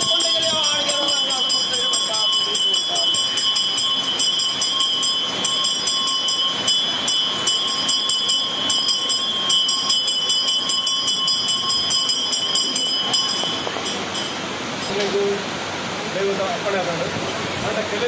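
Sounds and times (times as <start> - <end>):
bells ringing: 0.0 - 15.1.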